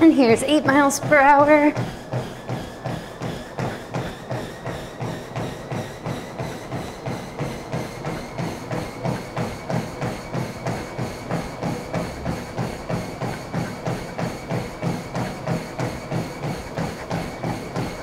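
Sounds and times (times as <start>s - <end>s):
footfalls on treadmill: 0.0s - 18.0s
treadmill motor whine: 0.0s - 18.0s.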